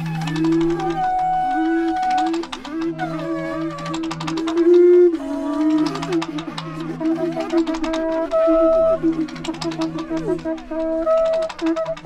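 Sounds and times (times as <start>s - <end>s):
quick percussive clicks: 0.0s - 12.0s.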